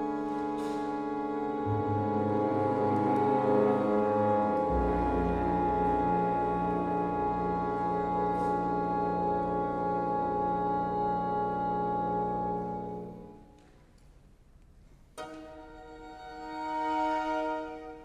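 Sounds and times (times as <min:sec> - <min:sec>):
bassoon: 0:00.0 - 0:13.8, 0:15.2 - 0:18.0
french horns: 0:00.0 - 0:13.8, 0:15.2 - 0:18.0
strings: 0:00.0 - 0:14.1, 0:15.2 - 0:18.0.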